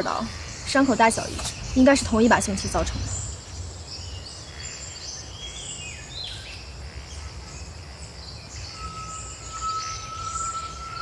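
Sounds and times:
faint bird chirps: 0:00.0 - 0:11.0
high insect drone: 0:00.0 - 0:11.0
low rumble: 0:00.3 - 0:04.8.

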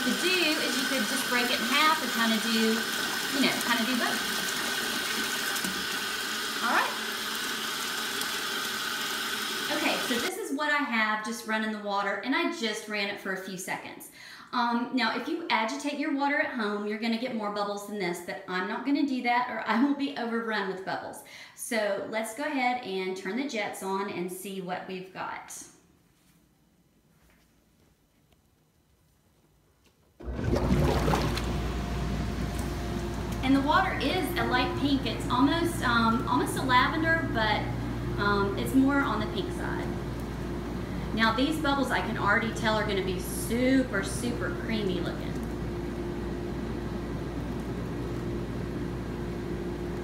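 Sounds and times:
faucet pouring into bathtub: 0:00.0 - 0:10.3, 0:30.2 - 0:36.9
pump motor humming: 0:00.0 - 0:10.3, 0:30.2 - 0:50.0
water churning: 0:00.0 - 0:10.3, 0:30.2 - 0:37.4.

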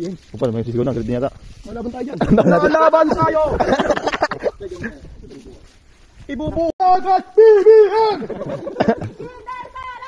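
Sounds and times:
outdoor background: 0:00.0 - 0:10.0
loud speech: 0:02.0 - 0:03.8, 0:09.1 - 0:10.0.

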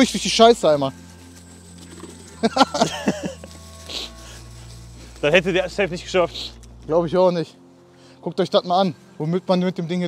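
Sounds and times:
background music with low bass: 0:00.0 - 0:10.0
man laughing: 0:02.4 - 0:04.2.

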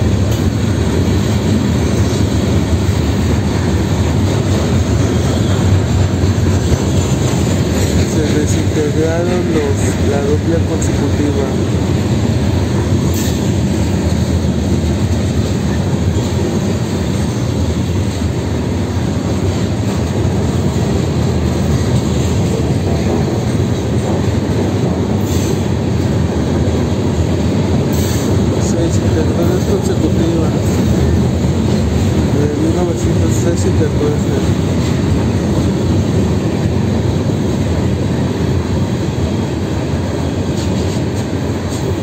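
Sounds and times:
train wheels rumbling on rail: 0:00.0 - 0:42.0.

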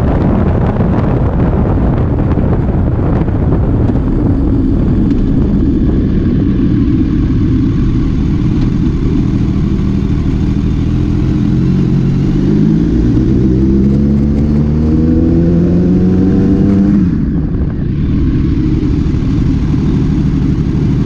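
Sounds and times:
motorcycle engine accelerating: 0:00.0 - 0:21.0
wind noise on microphone: 0:00.0 - 0:21.0.

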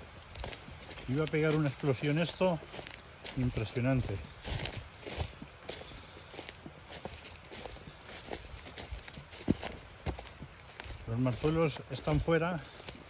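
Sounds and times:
footsteps crunching on leaf litter: 0:00.0 - 0:13.0.

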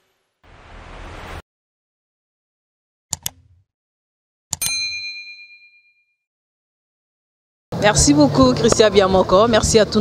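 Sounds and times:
bright bell ding: 0:04.6 - 0:06.2.

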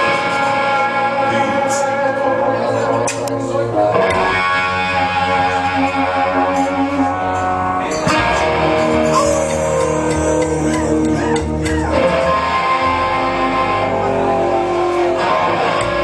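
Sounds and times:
band playing live: 0:00.0 - 0:16.0
guitar chords ringing: 0:00.0 - 0:16.0.

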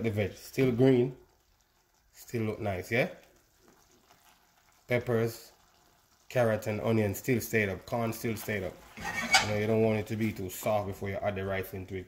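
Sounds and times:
pan sizzling on stove: 0:00.0 - 0:11.9
person speaking: 0:06.3 - 0:12.0.

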